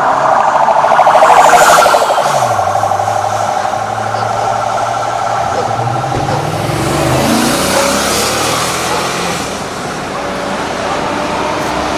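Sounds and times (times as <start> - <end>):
police siren pulsing: 0.0 - 9.6
vehicle engine passing: 1.2 - 11.9.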